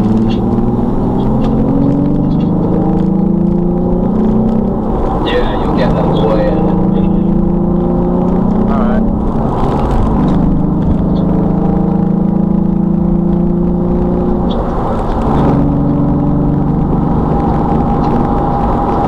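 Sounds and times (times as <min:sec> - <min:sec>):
car engine accelerating: 0:00.0 - 0:19.0
low road rumble: 0:00.0 - 0:19.0.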